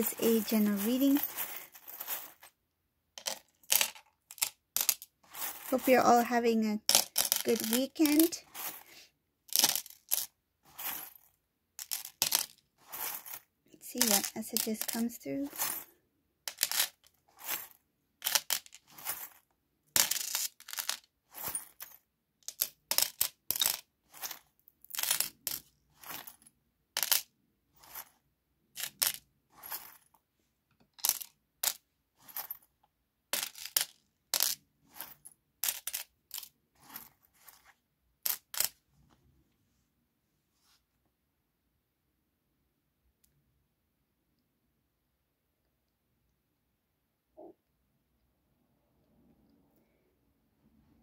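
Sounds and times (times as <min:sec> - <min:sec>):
metal charms jingling: 0:00.0 - 0:02.5, 0:07.4 - 0:08.9, 0:14.0 - 0:15.7
charms clattering on tray: 0:03.2 - 0:06.0, 0:06.9 - 0:08.9, 0:09.5 - 0:13.4, 0:14.0 - 0:15.9, 0:16.5 - 0:19.4, 0:20.0 - 0:26.4, 0:27.0 - 0:28.2, 0:28.8 - 0:30.1, 0:31.0 - 0:32.6, 0:33.3 - 0:38.8.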